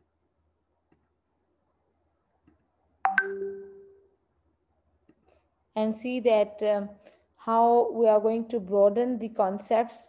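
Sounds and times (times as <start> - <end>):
two-note notification chime: 3.1 - 4.0.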